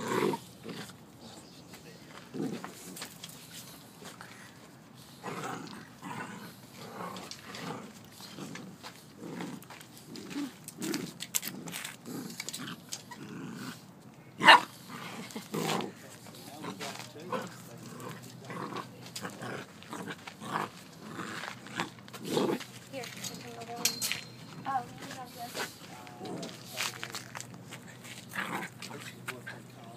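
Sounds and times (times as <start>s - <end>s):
puppies growling: 0.0s - 1.5s, 2.1s - 3.1s, 5.1s - 22.7s, 28.0s - 29.9s.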